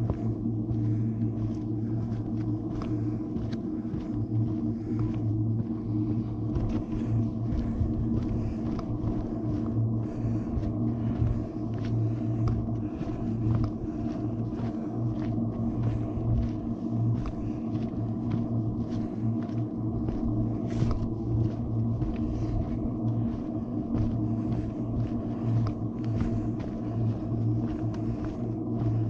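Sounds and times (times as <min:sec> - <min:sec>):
footsteps on gravel trail: 0:00.0 - 0:29.0
low hum and rumble: 0:00.0 - 0:29.0.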